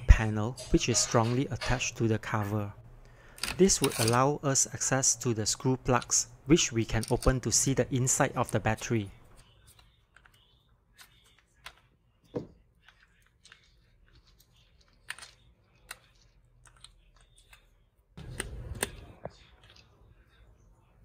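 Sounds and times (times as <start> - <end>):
plastic caps clicking and scraping: 6.9 - 7.5, 12.8 - 19.8.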